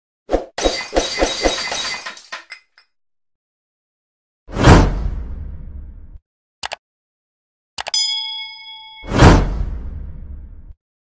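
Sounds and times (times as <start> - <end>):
glass shattering: 0.6 - 2.8
glass tinkles: 0.7 - 2.8, 8.0 - 9.2.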